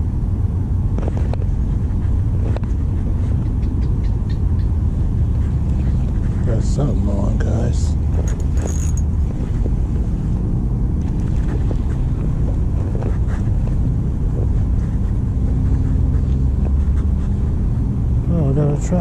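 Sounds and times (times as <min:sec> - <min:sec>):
distant road traffic rumble: 0:00.0 - 0:19.0.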